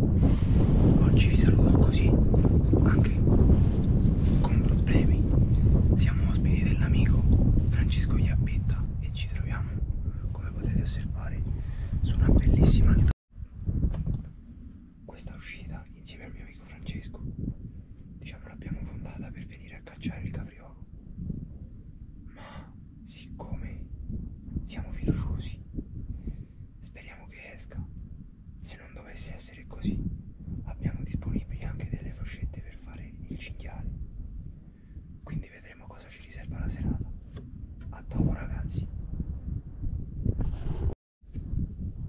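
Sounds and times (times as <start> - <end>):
low rumble: 0.0 - 42.0
person whispering: 0.9 - 2.2, 2.8 - 3.3, 4.3 - 13.1, 15.0 - 17.3, 18.2 - 20.8, 22.3 - 23.9, 24.6 - 25.6, 26.8 - 27.9, 28.6 - 30.0, 30.7 - 33.9, 35.2 - 37.1, 37.8 - 38.9
man speaking quietly: 0.9 - 3.3, 4.4 - 13.1, 15.1 - 17.3, 18.2 - 20.8, 22.3 - 23.9, 24.6 - 25.6, 26.8 - 27.9, 28.6 - 30.1, 30.7 - 33.9, 35.3 - 37.1, 37.9 - 38.9.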